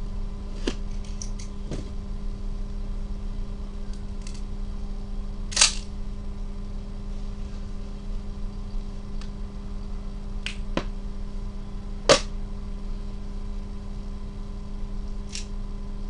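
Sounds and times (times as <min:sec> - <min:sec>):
steady low hum: 0:00.0 - 0:16.0
sharp snap: 0:12.1 - 0:12.3.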